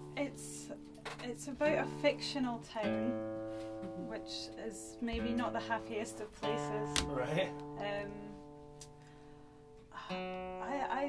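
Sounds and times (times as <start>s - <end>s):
guitar chord ringing: 0.0s - 11.0s.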